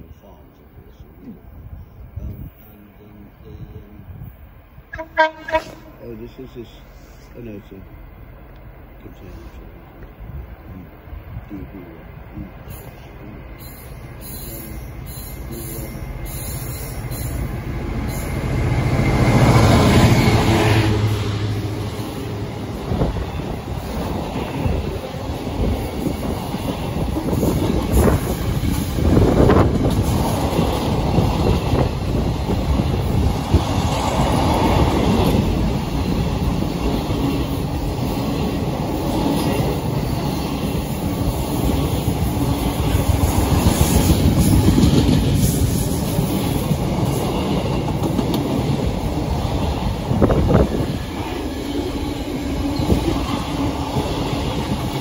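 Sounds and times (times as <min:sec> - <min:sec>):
freight train wheels on rails: 0:00.0 - 0:55.0.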